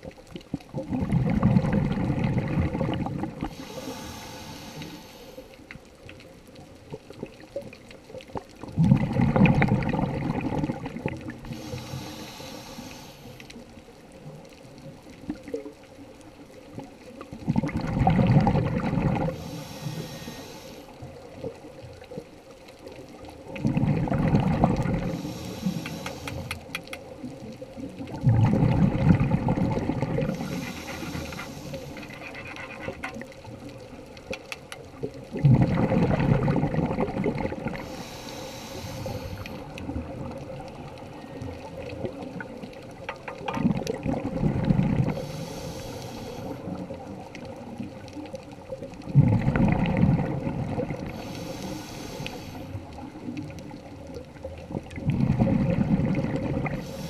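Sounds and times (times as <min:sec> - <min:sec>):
diver exhaling bubbling air: 0:00.7 - 0:05.4, 0:08.7 - 0:13.4, 0:17.4 - 0:20.9, 0:23.5 - 0:26.7, 0:28.0 - 0:33.6, 0:35.1 - 0:40.6, 0:43.4 - 0:47.0, 0:49.0 - 0:53.1, 0:54.7 - 0:57.0
regulator inhale hiss: 0:03.4 - 0:05.7, 0:11.4 - 0:13.6, 0:19.2 - 0:21.1, 0:25.0 - 0:26.7, 0:30.2 - 0:32.3, 0:37.8 - 0:39.7, 0:45.1 - 0:46.9, 0:51.1 - 0:52.9, 0:56.8 - 0:57.0.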